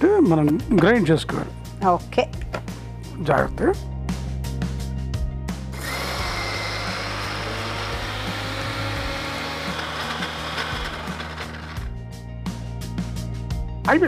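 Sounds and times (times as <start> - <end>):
mixer grinder running: 5.7 - 12.0.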